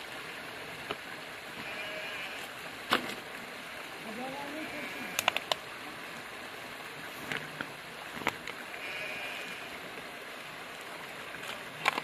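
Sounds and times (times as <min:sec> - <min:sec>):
shallow stream rushing: 0:00.0 - 0:12.0.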